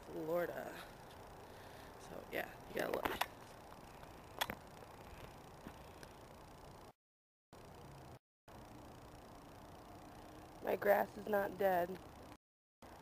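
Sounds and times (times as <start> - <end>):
faint outdoor background noise: 0.0 - 7.0, 7.6 - 13.0.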